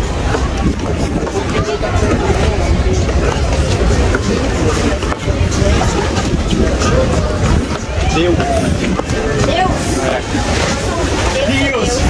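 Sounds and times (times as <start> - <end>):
low rumble: 0.0 - 11.4
people chattering: 0.0 - 12.0.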